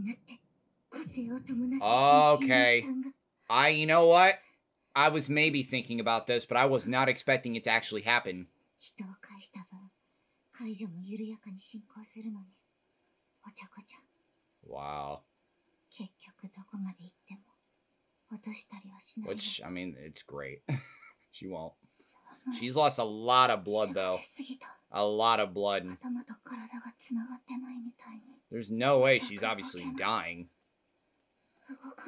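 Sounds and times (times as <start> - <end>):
woman speaking softly: 0.0 - 0.4, 1.0 - 3.1, 8.8 - 9.9, 10.6 - 12.5, 13.5 - 14.0, 16.0 - 17.4, 18.3 - 19.6, 22.0 - 22.7, 23.6 - 24.8, 25.8 - 28.3, 29.0 - 30.2, 31.7 - 32.0
woman talking quietly: 1.0 - 3.1, 18.4 - 19.6, 23.7 - 24.7, 29.0 - 30.1.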